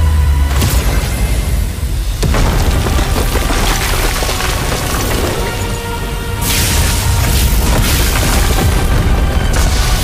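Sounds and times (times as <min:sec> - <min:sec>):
background score music: 0:00.0 - 0:10.0
debris noise: 0:02.2 - 0:10.0.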